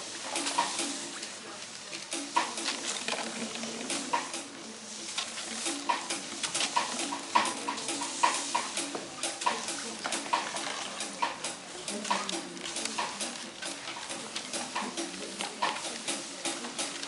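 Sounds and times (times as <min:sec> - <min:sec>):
push brooms brushing floor: 0:00.0 - 0:17.0.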